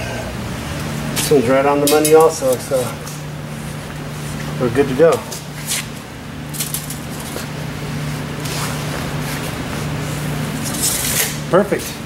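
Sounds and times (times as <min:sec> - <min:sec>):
low hum of shop machinery: 0:00.0 - 0:12.0
tape measure rustling scrapes: 0:10.6 - 0:11.4.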